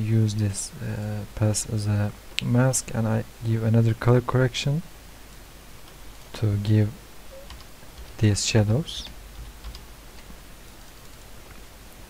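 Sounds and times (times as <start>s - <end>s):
low steady hum: 0.0s - 12.0s
computer clicks: 7.3s - 8.1s.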